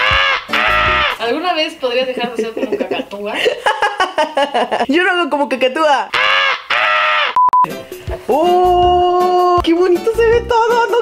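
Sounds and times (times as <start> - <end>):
cockatoo squawks: 0.0 - 1.2, 6.1 - 7.4
short steady beep: 7.4 - 7.7.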